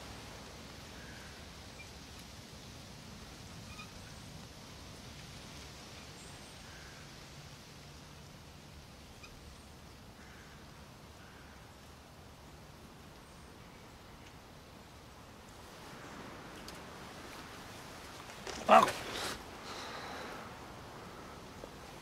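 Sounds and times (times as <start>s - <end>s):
wind rustling leaves: 0.0s - 22.0s.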